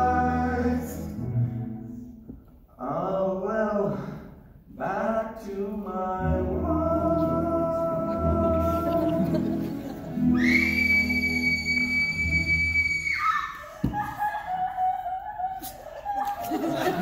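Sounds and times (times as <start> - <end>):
singers and band holding a chord: 0.0 - 1.8, 4.8 - 10.4.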